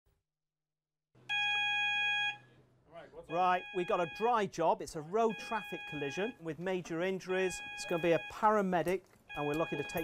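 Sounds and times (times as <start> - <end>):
alarm electronic tone: 3.3 - 4.4, 5.1 - 6.4, 7.3 - 8.4.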